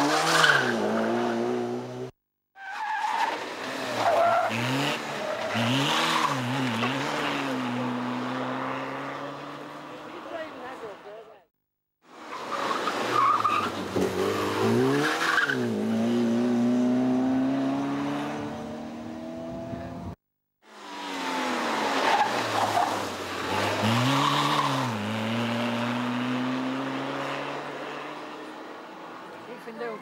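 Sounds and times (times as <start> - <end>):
small car engines revving: 3.3 - 10.2, 12.7 - 28.8.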